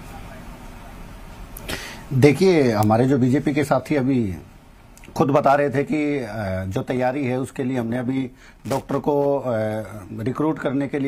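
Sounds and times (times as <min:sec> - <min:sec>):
faint microphone hum: 0:00.0 - 0:11.0.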